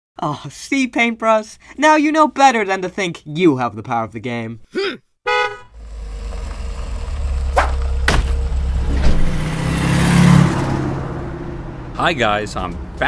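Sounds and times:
van engine rumbling: 5.5s - 13.0s
sharp knocks: 7.5s - 9.4s.

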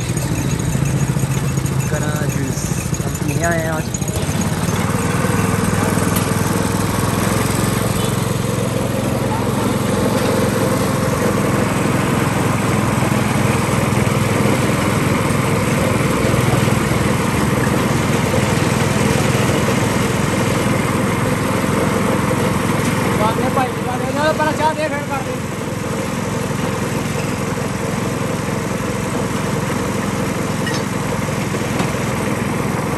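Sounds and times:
sugarcane crusher running: 0.0s - 32.9s.

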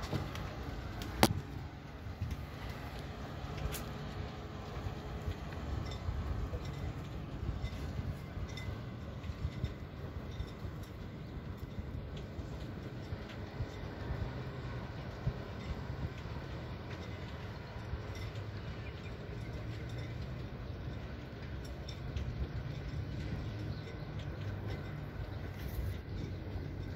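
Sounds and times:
steady low rumble: 0.0s - 26.9s
light ticks: 2.2s - 26.9s.

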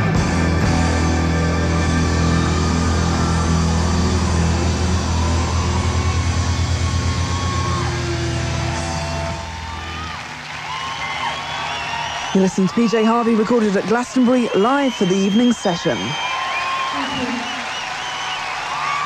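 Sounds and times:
rock band closing chord: 0.0s - 10.6s
crowd cheering and whooping: 0.8s - 19.0s.

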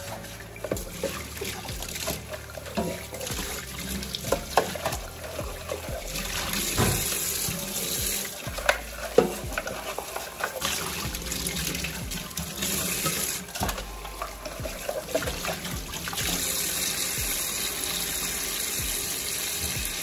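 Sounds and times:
tap running into metal sink: 0.6s - 13.8s.

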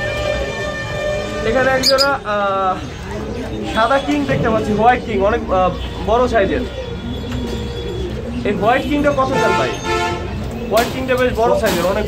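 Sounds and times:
pigeons cooing: 0.1s - 12.0s.

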